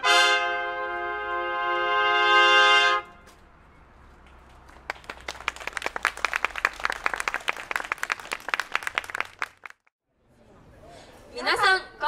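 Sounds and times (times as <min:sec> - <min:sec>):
small crowd applauding: 0:04.2 - 0:09.9.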